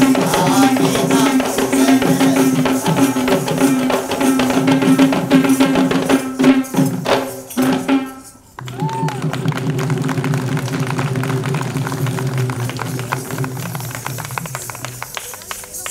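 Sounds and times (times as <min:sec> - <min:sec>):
rapid barrel drumming: 0:00.0 - 0:08.2, 0:08.8 - 0:14.9.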